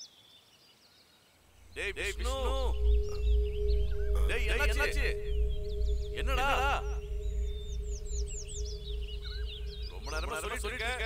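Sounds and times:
faint bird chirps: 0.0s - 11.0s
deep rumbling drone score: 1.6s - 11.0s.

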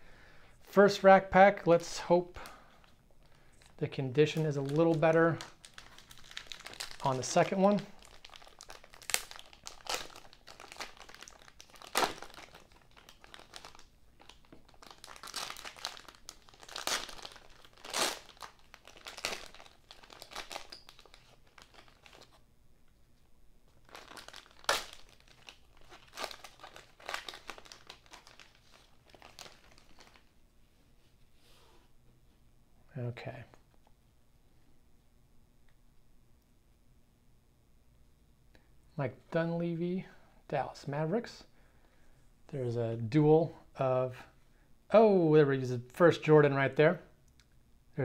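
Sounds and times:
plastic wrapper crinkling: 2.4s - 23.0s, 23.7s - 30.4s.

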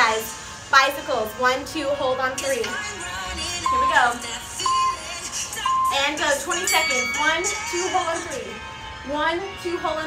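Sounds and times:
pop music with singing: 0.0s - 10.0s
interval timer beeps: 3.6s - 8.2s.

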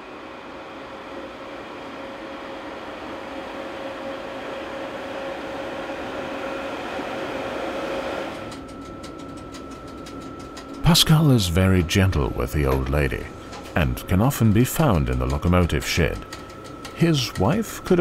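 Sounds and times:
electric locomotive hum: 0.0s - 18.0s
high steady whine: 0.0s - 18.0s
rapid clicks: 8.5s - 11.0s, 14.8s - 18.0s.

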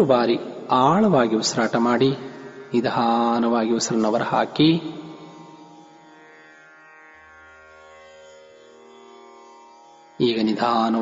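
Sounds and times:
man chanting: 0.0s - 5.3s, 10.2s - 11.0s.

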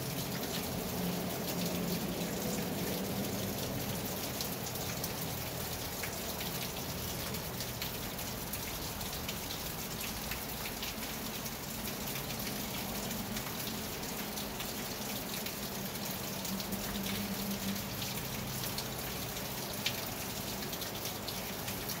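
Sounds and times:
rain on a roof: 0.0s - 22.0s.

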